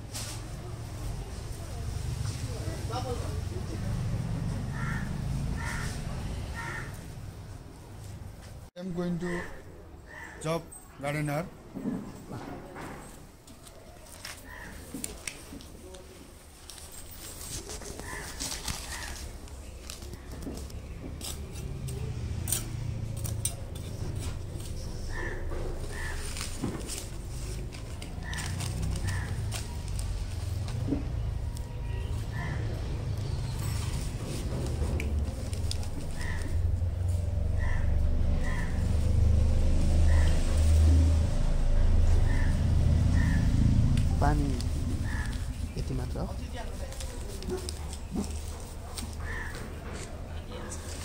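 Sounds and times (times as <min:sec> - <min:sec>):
engine humming: 0:16.7 - 0:51.0.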